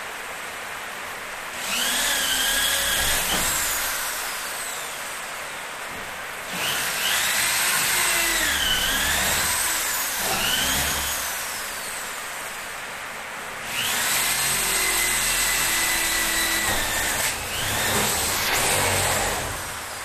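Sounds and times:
power drill motor whine: 1.6 - 5.6, 6.5 - 12.2, 13.6 - 20.0.

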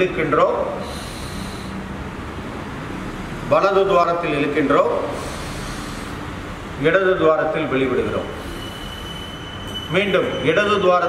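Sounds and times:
man breathing through nostril: 0.8 - 2.1, 5.1 - 6.4, 8.3 - 9.2.

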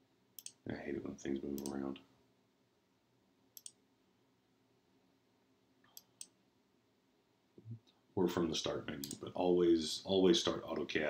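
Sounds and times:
computer mouse clicks: 0.4 - 0.6, 1.6 - 1.8, 3.6 - 3.8, 5.8 - 6.4, 9.0 - 9.2.

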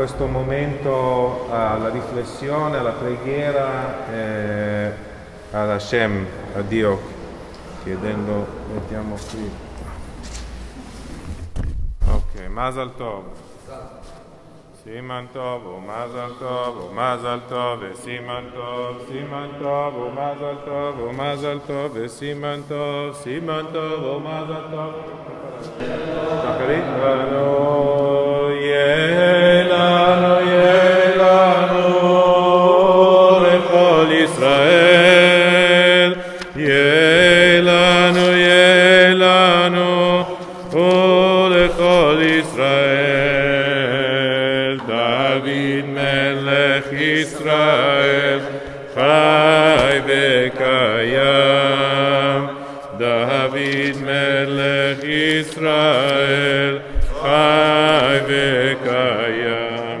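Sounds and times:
man chanting slow melody: 0.0 - 7.1.

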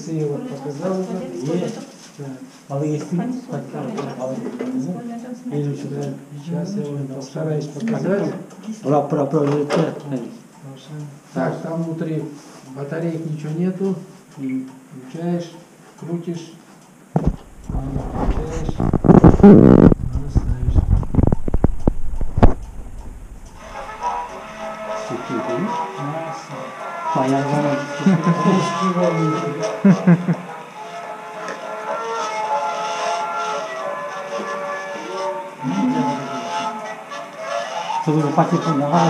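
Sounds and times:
old gramophone record music: 17.1 - 39.0.

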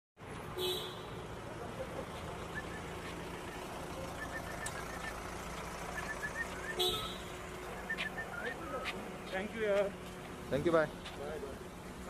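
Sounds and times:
passing engines rumble: 0.2 - 12.0.

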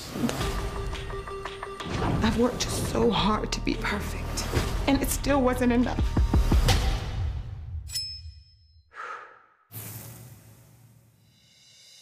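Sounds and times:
music: 0.0 - 7.9, 11.3 - 12.0.

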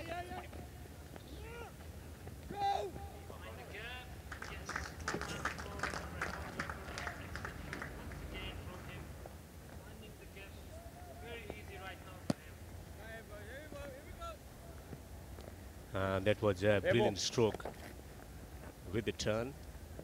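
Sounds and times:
distant players shouting: 0.0 - 9.1, 10.2 - 15.1
scattered clapping: 4.2 - 8.7.

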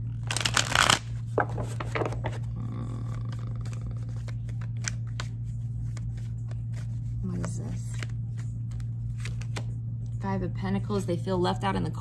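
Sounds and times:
cards riffle shuffling: 0.2 - 2.5, 3.1 - 9.8.

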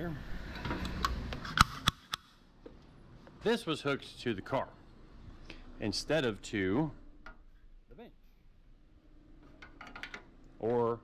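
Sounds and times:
sharp clicks and knocks: 9.4 - 10.8.

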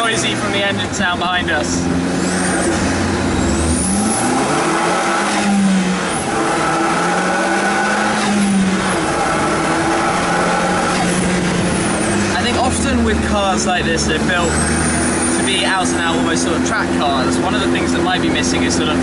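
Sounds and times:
rush of noise at gear change: 0.0 - 16.6
car engine accelerating: 0.0 - 19.0.

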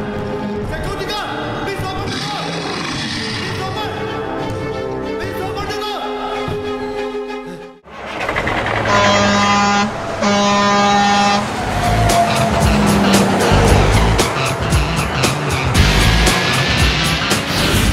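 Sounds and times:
film music: 0.0 - 17.9
truck horn blasts: 8.7 - 17.4.

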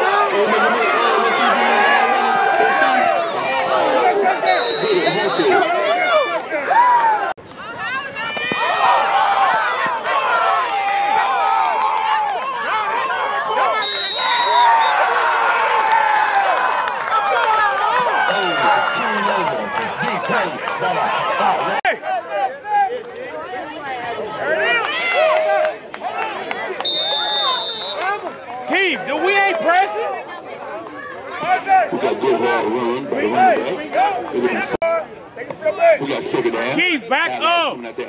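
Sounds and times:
crowd shouting and talking: 0.0 - 38.0.

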